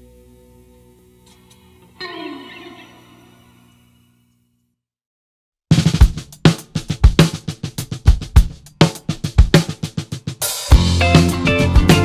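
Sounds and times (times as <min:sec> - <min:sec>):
rock drum beat: 0:05.7 - 0:12.0.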